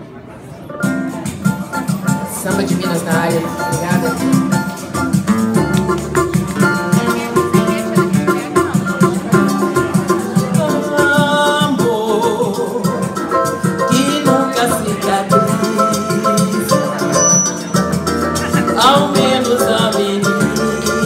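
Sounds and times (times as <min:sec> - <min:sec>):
plucked strings: 0:00.8 - 0:21.0
hand percussion: 0:01.0 - 0:21.0
melody line: 0:13.8 - 0:19.9.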